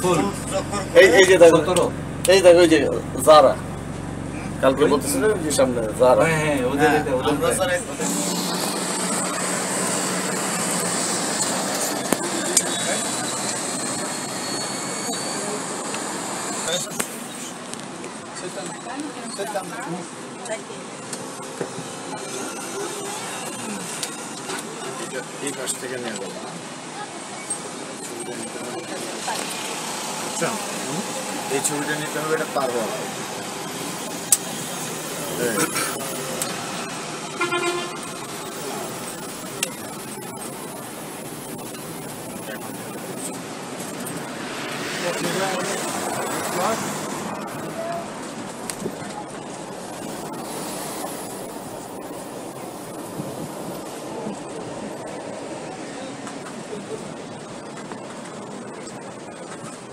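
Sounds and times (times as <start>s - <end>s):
moving vehicle running noise: 0.0s - 59.9s
road and traffic noise: 0.0s - 59.9s
vehicle horn toot: 37.3s - 38.3s.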